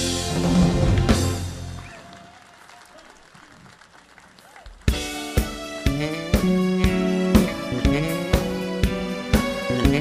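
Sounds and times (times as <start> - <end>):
crowd noise: 0.0 - 5.6
audience applause: 0.3 - 5.4.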